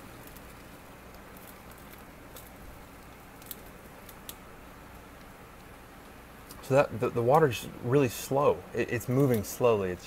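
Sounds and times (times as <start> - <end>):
water trickling onto filter pads: 0.0 - 9.8.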